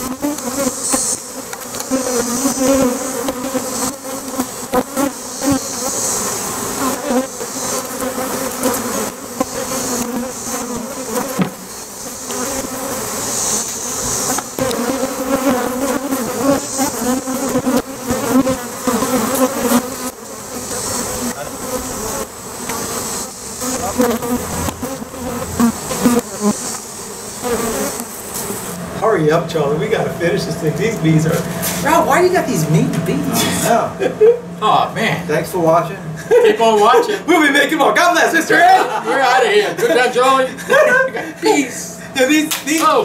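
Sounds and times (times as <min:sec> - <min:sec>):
bees buzzing: 0:00.0 - 0:43.0
knocks on hive boxes: 0:11.2 - 0:11.6.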